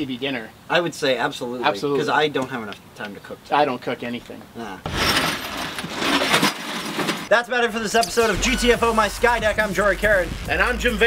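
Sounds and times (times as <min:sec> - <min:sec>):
broken glass rattling and clinking: 0:04.8 - 0:07.3.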